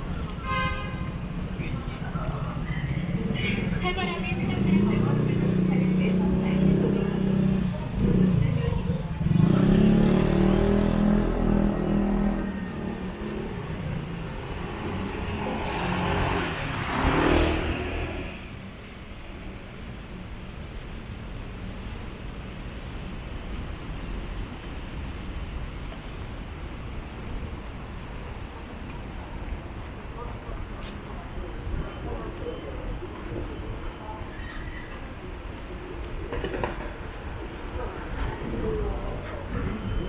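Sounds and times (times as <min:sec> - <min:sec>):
distant traffic hum: 0:00.0 - 0:40.0
car passing close by: 0:14.6 - 0:18.4.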